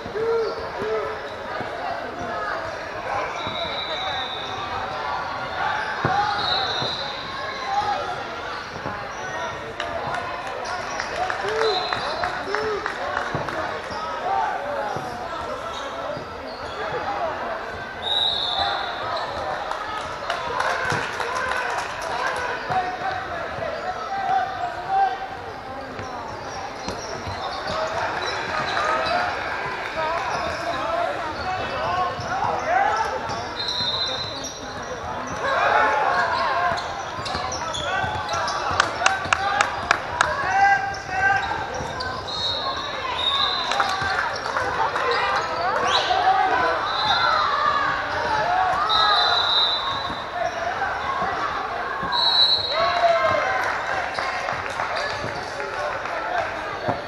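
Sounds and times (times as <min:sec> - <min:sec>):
sneakers squeaking on court: 0:00.0 - 0:19.6, 0:22.4 - 0:55.5
echoing crowd chatter: 0:00.0 - 0:57.0.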